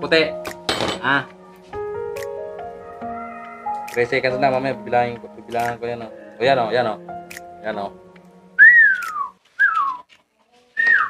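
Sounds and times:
person whistling falling notes: 8.6s - 10.1s, 10.8s - 11.0s.

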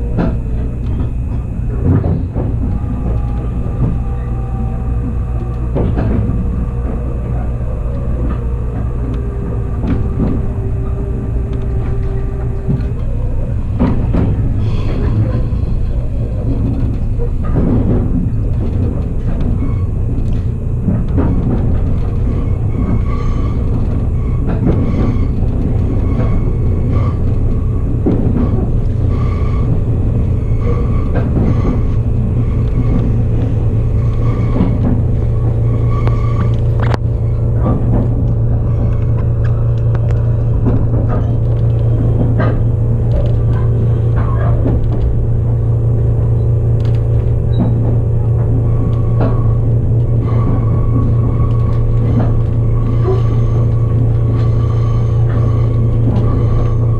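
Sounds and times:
train running low rumble: 0.0s - 56.9s.

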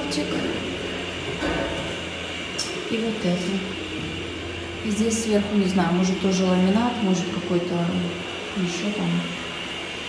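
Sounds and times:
low rumbling background noise: 0.0s - 10.0s.

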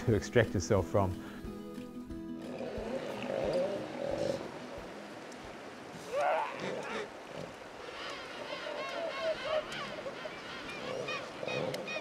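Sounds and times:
faint outdoor background noise: 1.4s - 12.0s
animal wavering call: 2.5s - 4.6s, 6.0s - 7.2s, 7.9s - 12.0s.

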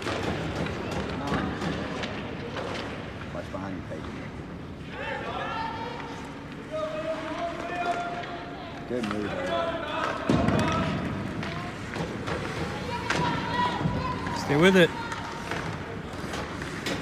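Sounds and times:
hockey sticks and skates clacking: 0.0s - 3.4s, 5.8s - 17.0s.

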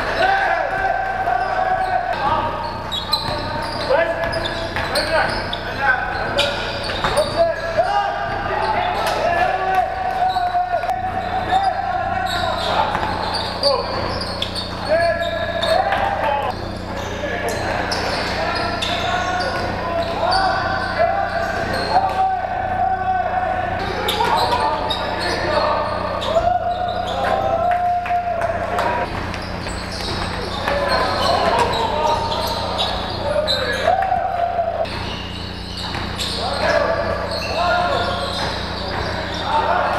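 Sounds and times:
voices: 0.0s - 39.9s
basketball bouncing on hardwood floor: 12.9s - 13.2s.

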